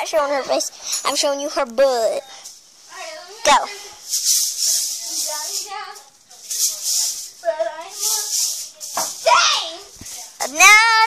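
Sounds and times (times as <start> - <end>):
hula hoop rattling swish: 0.1 - 11.0
girl singing: 7.4 - 11.0.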